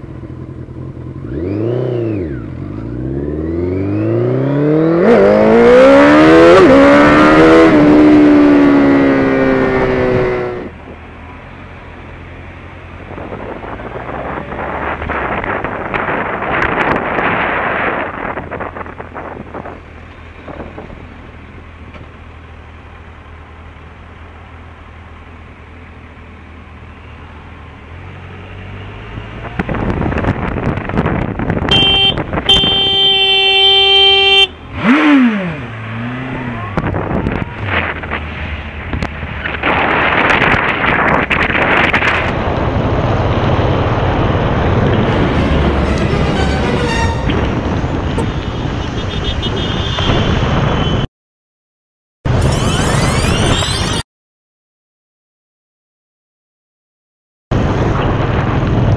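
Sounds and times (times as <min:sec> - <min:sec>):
wind rushing over microphone: 0:13.0 - 0:21.0, 0:29.4 - 0:32.8, 0:36.7 - 0:51.1, 0:57.5 - 0:58.9
vehicle horn: 0:31.7 - 0:34.6, 0:45.0 - 0:51.1
motorcycle engine: 0:41.8 - 0:50.0.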